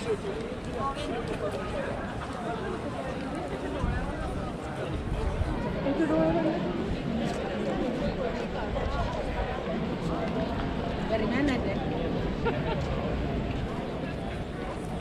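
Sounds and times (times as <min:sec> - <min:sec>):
people talking: 0:00.0 - 0:15.0.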